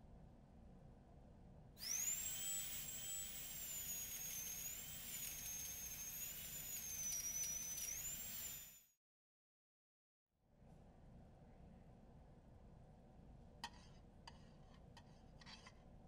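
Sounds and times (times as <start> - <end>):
high-pitched electric tool whine: 1.8 - 9.0.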